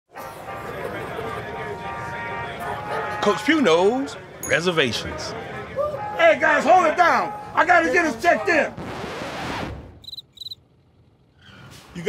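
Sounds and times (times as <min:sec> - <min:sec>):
high cricket chirps: 0:10.0 - 0:10.6.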